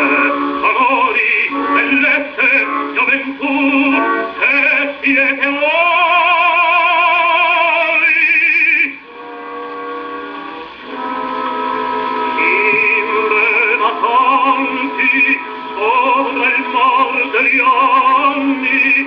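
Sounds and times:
baritone singing: 0.0s - 9.4s, 10.8s - 19.0s
orchestra on gramophone record: 0.0s - 19.0s.

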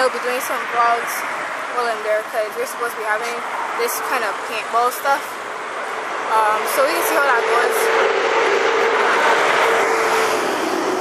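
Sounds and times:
road noise rushing: 0.0s - 11.0s
vehicle engine whine: 0.0s - 11.0s.

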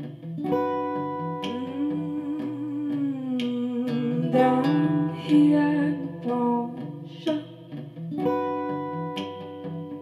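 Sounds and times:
acoustic guitar pattern: 0.0s - 10.0s.

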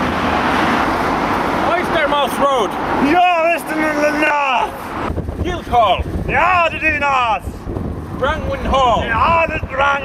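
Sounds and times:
wind rumble on microphone: 4.9s - 10.0s.

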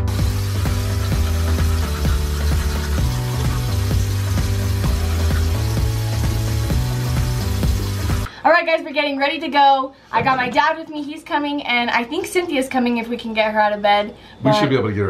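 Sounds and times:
background music with beat and bass: 0.0s - 8.3s.

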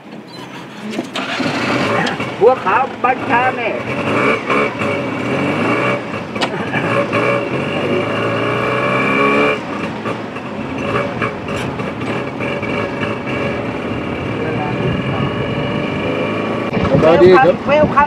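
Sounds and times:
small engine revving: 0.6s - 2.6s, 3.2s - 17.5s.

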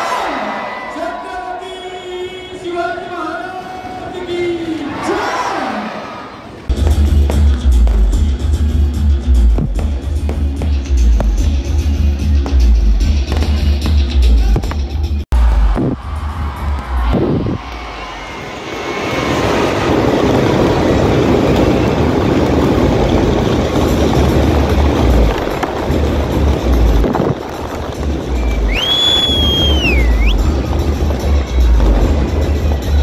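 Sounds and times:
fireworks crackling: 6.7s - 16.0s, 16.9s - 33.0s
music with heavy bass beat: 6.7s - 18.0s, 24.2s - 33.0s
shrill whistle: 28.4s - 30.5s.

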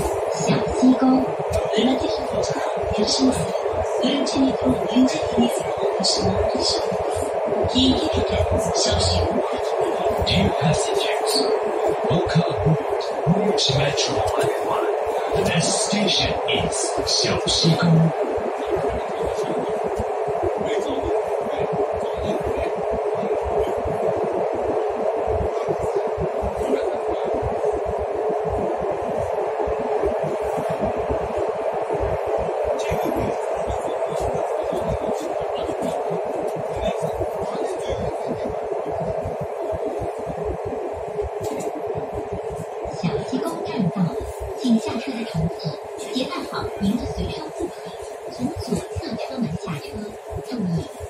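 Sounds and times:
metro train running: 0.0s - 51.0s.

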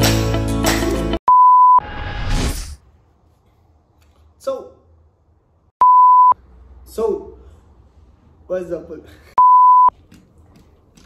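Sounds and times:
pure-tone bleep: 1.3s - 1.8s, 5.8s - 6.4s, 9.4s - 9.9s.

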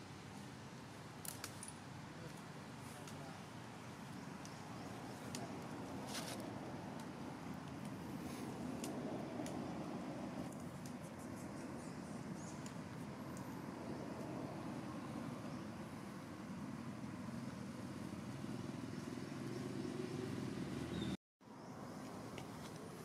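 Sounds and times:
low outdoor rumble: 2.0s - 21.1s.

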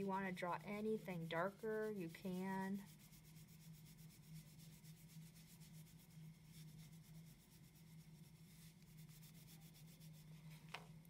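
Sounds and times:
crayon scratching on paper: 0.0s - 10.4s.

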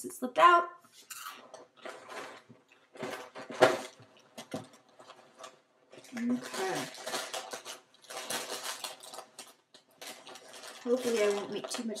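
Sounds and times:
plastic liner crinkling: 1.0s - 12.0s
dry cereal rattling in box: 1.8s - 12.0s.

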